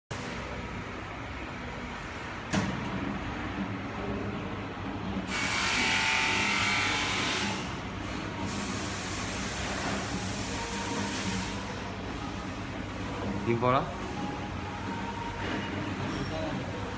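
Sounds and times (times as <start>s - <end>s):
machine motor hum: 2.8s - 16.9s.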